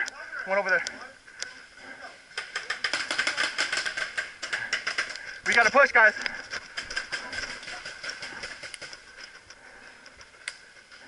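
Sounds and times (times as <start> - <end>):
paintball marker firing rapidly: 2.4 - 5.1.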